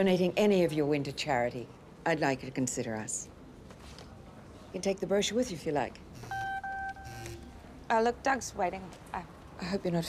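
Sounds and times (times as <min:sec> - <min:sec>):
phone electronic beeps: 0:06.2 - 0:07.4
phone buzzing on vibrate: 0:06.2 - 0:07.6.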